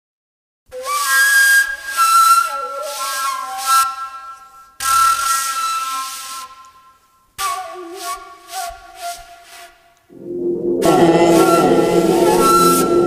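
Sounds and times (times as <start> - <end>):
breathy bamboo flute: 0.7 - 13.0.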